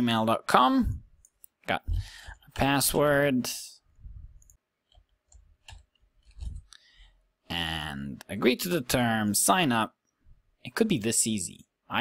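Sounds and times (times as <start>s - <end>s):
man speaking: 0.0s - 3.8s, 7.5s - 10.0s, 10.6s - 12.0s
soft low thumps: 1.8s - 2.2s
keyboard and mouse clicks: 4.4s - 6.8s.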